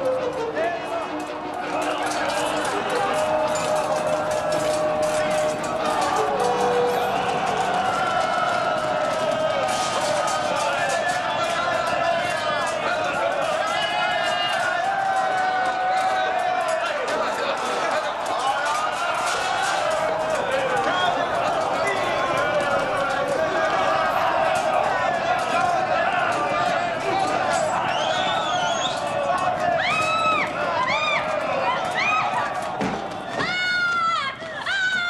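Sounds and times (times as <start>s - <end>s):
crowd shouting: 0.0s - 35.0s
high screams: 27.4s - 32.7s.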